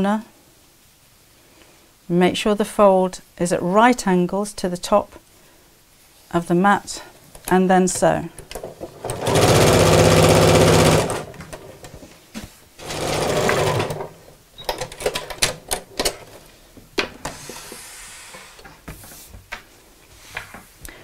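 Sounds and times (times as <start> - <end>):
sewing machine stitching: 8.5 - 11.8, 12.8 - 15.7.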